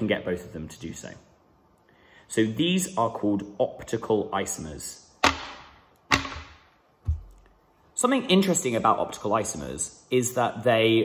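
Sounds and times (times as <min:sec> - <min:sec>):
plastic models knocking on surface: 0:05.2 - 0:07.4.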